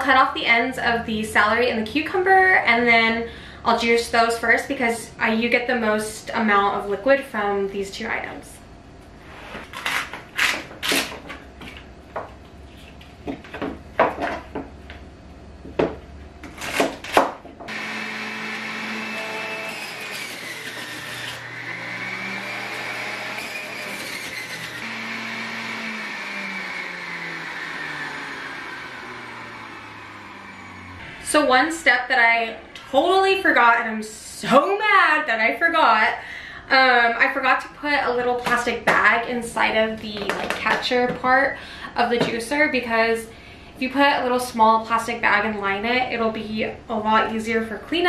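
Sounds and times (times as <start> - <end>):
juicer motor whining: 17.7 - 31.3.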